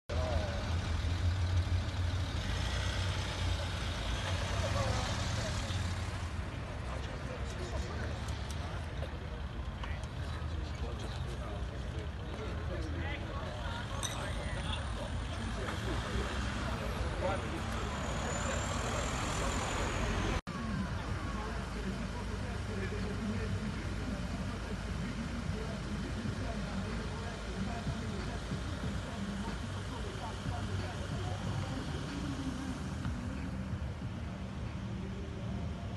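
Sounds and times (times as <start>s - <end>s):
crowd talking: 0.1s - 35.9s
faint background voices: 0.1s - 35.9s
traffic rumble: 0.1s - 35.9s
vehicle engine running: 0.1s - 35.9s.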